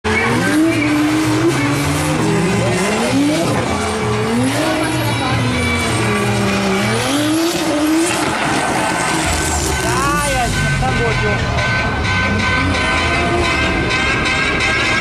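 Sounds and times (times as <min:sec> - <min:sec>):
car engine revving hard: 0:00.0 - 0:15.0.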